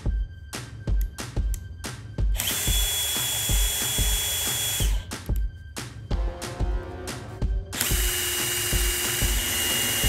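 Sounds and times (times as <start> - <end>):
background music with steady beat: 0.0 - 10.0
impact wrench motor whine: 2.3 - 5.1, 7.8 - 10.0.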